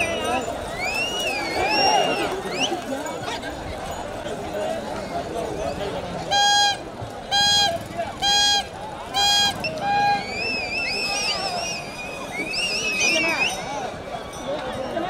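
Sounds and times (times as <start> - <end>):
shrill wavering whistle: 0.0 - 2.7, 9.2 - 13.8
crowd voices: 0.0 - 15.0
horn honks: 6.3 - 10.5.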